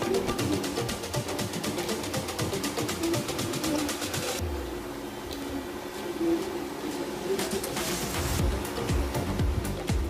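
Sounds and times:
background music with quick beat: 0.0s - 4.4s, 7.4s - 10.0s.

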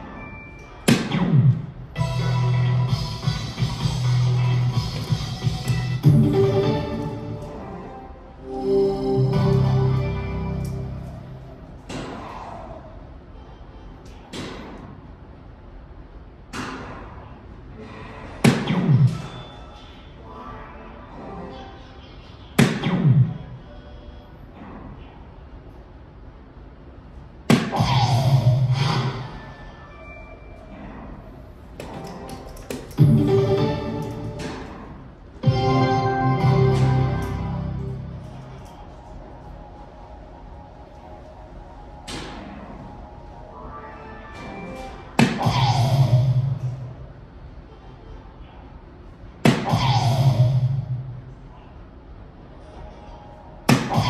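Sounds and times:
faint background music: 0.0s - 54.0s.

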